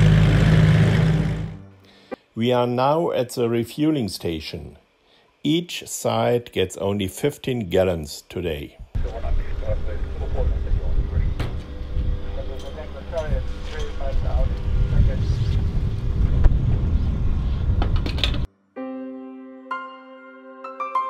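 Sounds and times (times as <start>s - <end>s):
fuel pump humming: 0.0s - 1.7s
wind rumbling on microphone: 8.8s - 18.5s
soft piano music: 18.5s - 21.0s.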